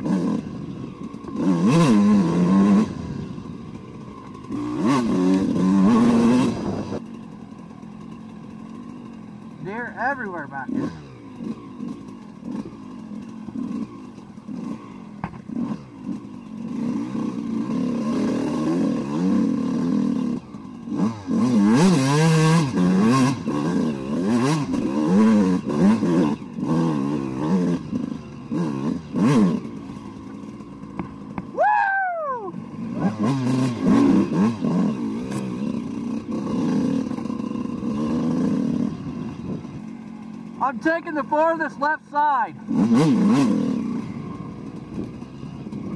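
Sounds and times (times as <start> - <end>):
dirt bike engine revving: 0.0 - 45.9.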